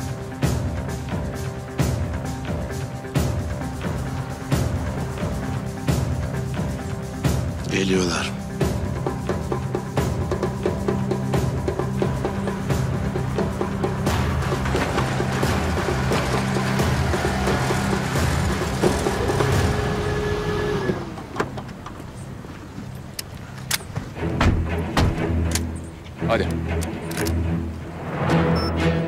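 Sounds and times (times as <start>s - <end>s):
dramatic background music: 0.0s - 29.0s
pickup truck engine winding down: 11.6s - 23.1s.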